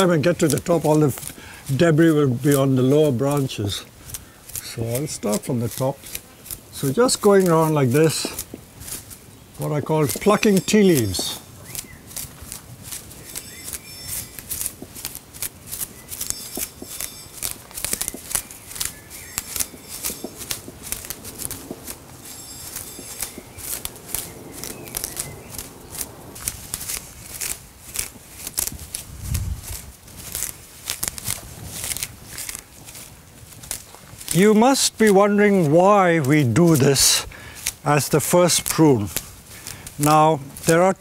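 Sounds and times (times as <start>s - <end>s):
leaves snapping and rustling: 0.0s - 41.0s.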